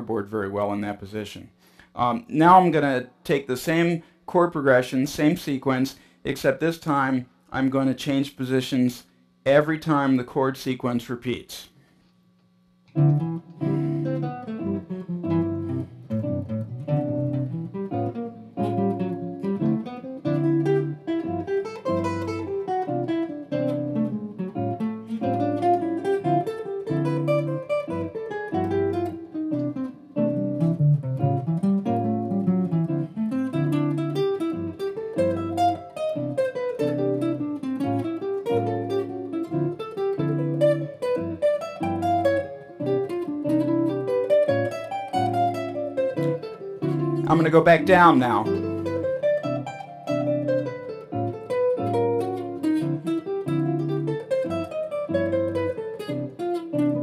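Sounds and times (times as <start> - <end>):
jazz guitar single-note runs: 12.9 - 57.0
sustained guitar chords: 12.9 - 57.0.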